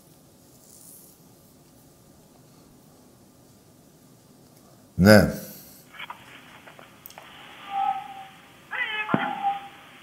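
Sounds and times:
meow-like call over telephone: 7.6s - 9.8s.

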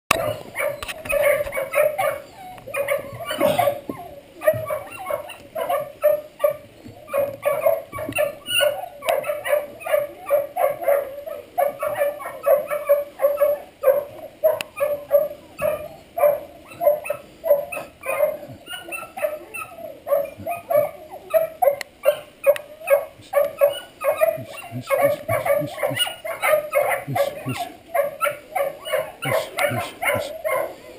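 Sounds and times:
puppy yelping and whimpering: 0.1s - 30.9s.

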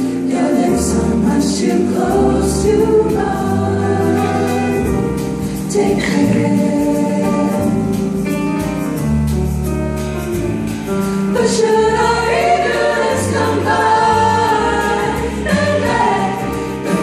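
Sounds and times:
vocal ensemble singing in harmony: 0.0s - 9.0s, 10.8s - 17.0s
drum kit: 0.0s - 17.0s
upright bass: 0.0s - 17.0s.

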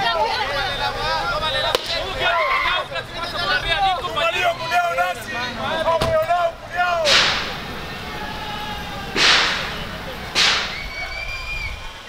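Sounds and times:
sharp cracks with short hiss: 7.1s - 7.7s, 9.1s - 11.0s.

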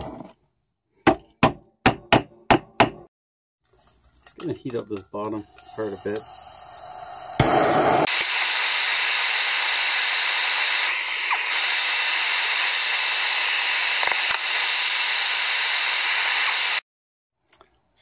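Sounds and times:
torch flame hissing: 5.4s - 16.8s
torch lighting pop: 7.4s - 8.5s.

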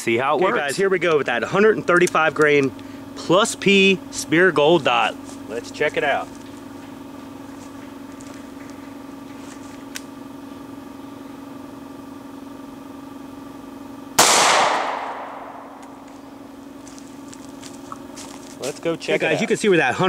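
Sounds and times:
steady low hum: 0.0s - 20.0s
revolver gunshot: 14.2s - 15.9s.

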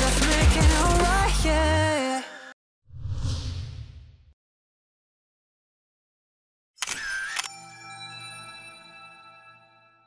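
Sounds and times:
pop song: 0.0s - 2.6s
whoosh sound effect: 2.9s - 4.3s.

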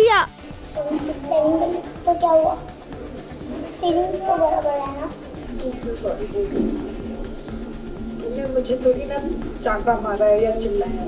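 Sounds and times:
young child speaking: 0.0s - 2.7s, 3.6s - 6.6s.

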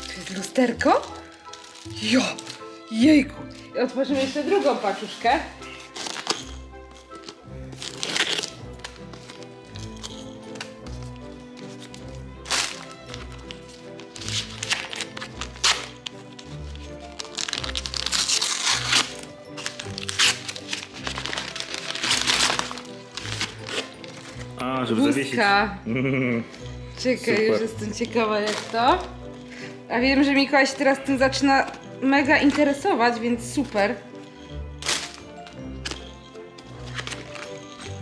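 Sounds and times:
background music with steady beat: 0.0s - 38.0s
paper tearing and crinkling: 1.0s - 2.8s, 4.1s - 24.6s, 27.4s - 29.7s, 34.8s - 38.0s.

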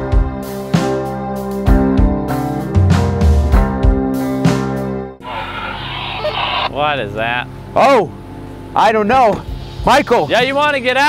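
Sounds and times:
truck engine hum: 5.2s - 9.6s.

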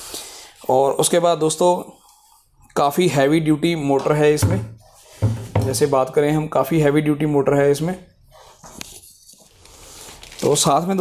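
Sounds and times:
plastic bag rustling: 8.8s - 11.0s.

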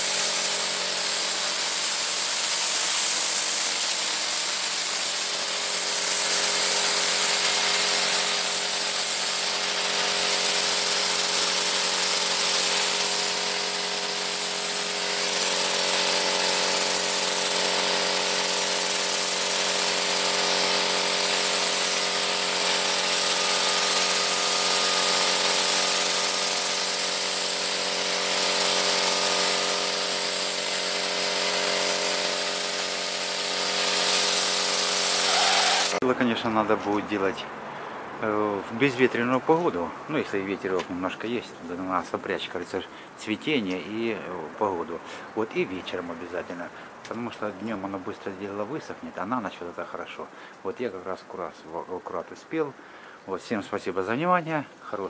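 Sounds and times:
air compressor humming: 0.0s - 36.0s
spray gun hissing: 0.0s - 36.0s.

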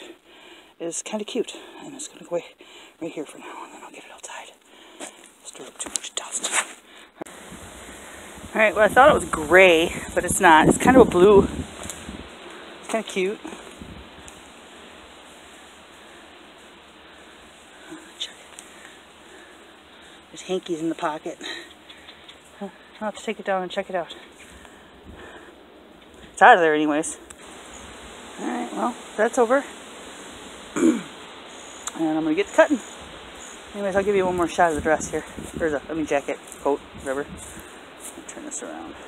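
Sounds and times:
faint rustling: 3.0s - 39.0s
wind buffeting microphone: 7.3s - 17.6s, 24.3s - 38.1s
woman clearing throat: 30.8s - 31.1s.

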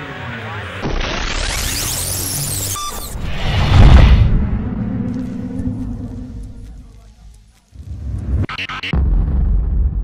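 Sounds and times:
low rumbling drone: 3.1s - 10.0s.

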